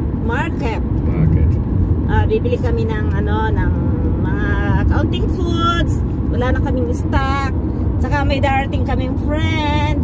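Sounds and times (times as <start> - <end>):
car cabin road and engine noise: 0.0 - 10.0.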